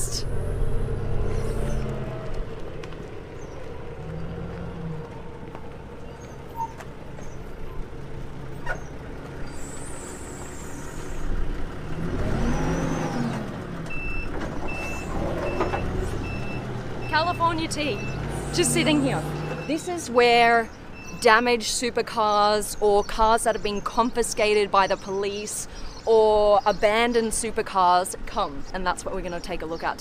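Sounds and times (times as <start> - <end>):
forklift engine revving: 0.0 - 20.0
reversing alarm beeping: 13.9 - 19.9, 20.9 - 21.3.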